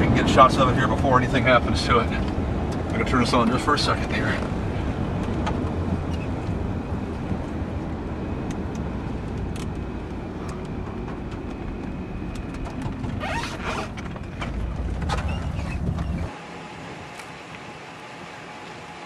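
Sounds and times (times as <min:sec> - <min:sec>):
car engine rumble inside cabin: 0:00.0 - 0:19.0.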